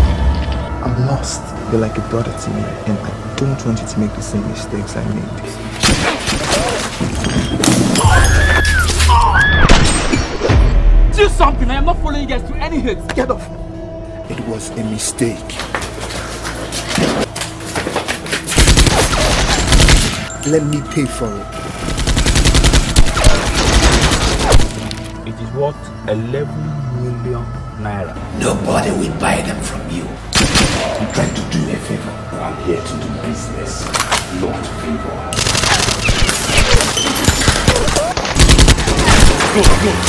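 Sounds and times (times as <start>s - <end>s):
gunfire in rapid bursts: 35.4s - 40.0s.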